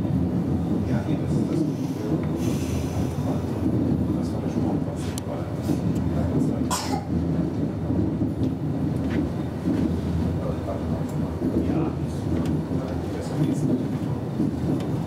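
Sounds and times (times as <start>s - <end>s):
train rumbling on track: 0.0s - 15.0s
sharp clicks of train wheels: 0.3s - 15.0s.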